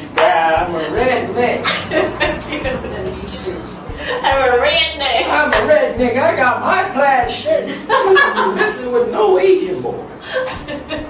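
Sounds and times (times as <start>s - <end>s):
man talking and chuckling: 1.0s - 4.4s
laughter: 1.6s - 3.0s, 7.7s - 8.9s, 10.2s - 11.0s.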